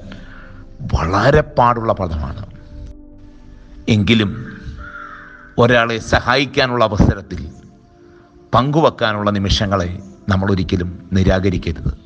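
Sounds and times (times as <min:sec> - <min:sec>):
soft background music: 0:00.0 - 0:12.0
man speaking: 0:00.8 - 0:02.6, 0:03.8 - 0:04.8, 0:05.6 - 0:07.7, 0:08.5 - 0:12.0.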